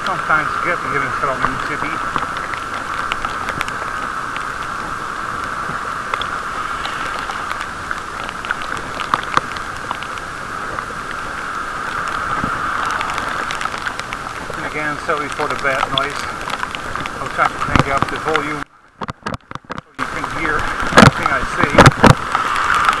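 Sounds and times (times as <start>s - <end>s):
muffled hiss of wet road riding: 0.0s - 23.0s
raindrops tapping on camera case: 0.0s - 23.0s.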